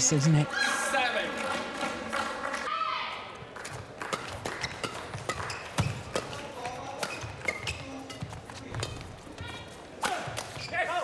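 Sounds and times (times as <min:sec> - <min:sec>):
rackets hitting shuttlecock: 0:03.6 - 0:09.2
shoe squeaks on court floor: 0:04.6 - 0:06.2, 0:07.0 - 0:09.6, 0:10.5 - 0:11.0.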